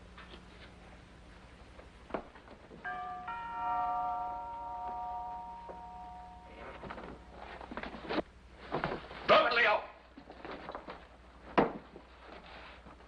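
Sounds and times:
two-note door chime: 0:02.8 - 0:07.4.

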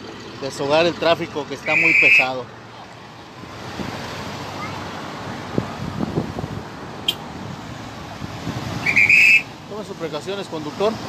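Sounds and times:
traffic driving past: 0:00.0 - 0:11.0
wind on microphone: 0:05.4 - 0:08.9.

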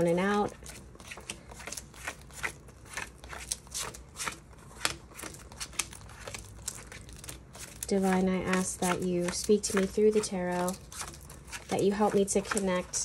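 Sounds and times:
cards being shuffled: 0:00.0 - 0:13.0.

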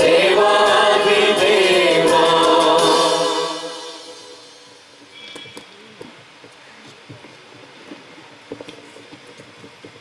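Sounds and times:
youth choir singing a hymn: 0:00.0 - 0:04.6.

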